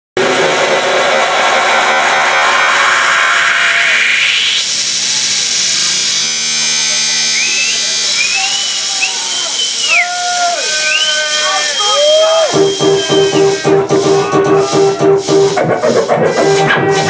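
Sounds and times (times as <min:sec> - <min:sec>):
distorted electronic dance music: 0:00.2 - 0:17.0.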